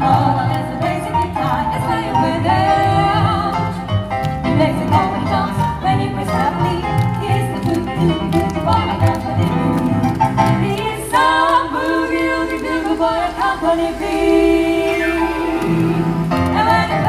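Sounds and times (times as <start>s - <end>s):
boogie-woogie keyboard: 0.0s - 13.5s.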